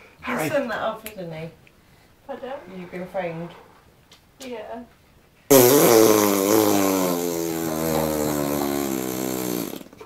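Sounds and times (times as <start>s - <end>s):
person blowing a raspberry: 5.5s - 10.0s.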